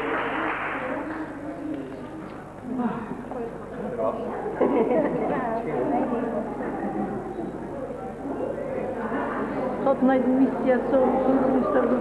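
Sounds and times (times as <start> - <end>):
applause: 0.0 - 1.9
crowd murmur: 0.0 - 12.0.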